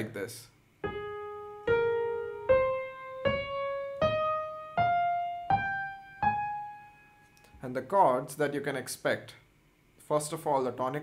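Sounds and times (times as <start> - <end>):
piano playing a scale: 0.8 - 7.3.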